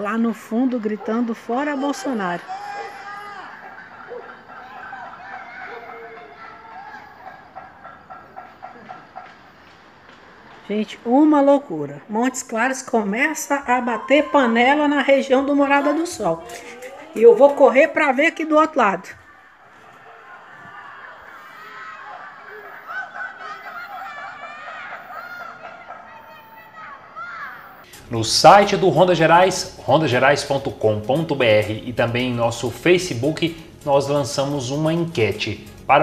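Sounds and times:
distant shouting voices: 0.0s - 36.0s.

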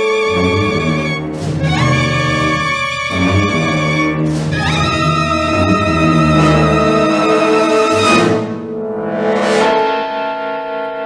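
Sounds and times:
dramatic soundtrack held chord: 0.0s - 11.0s.

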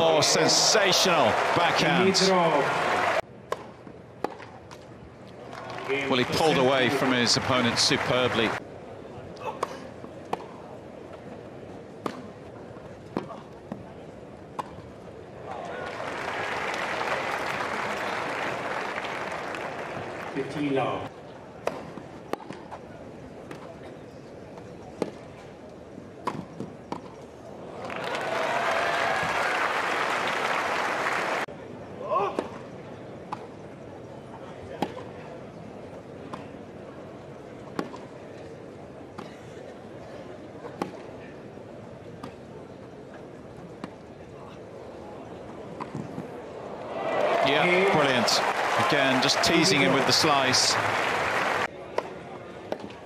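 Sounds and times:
court ambience: 0.0s - 3.2s, 5.6s - 8.6s, 47.2s - 51.7s
crowd applauding and cheering: 0.0s - 3.2s, 5.6s - 8.6s, 15.7s - 20.5s, 27.9s - 31.5s, 46.9s - 51.7s
crowd noise: 0.0s - 53.0s.

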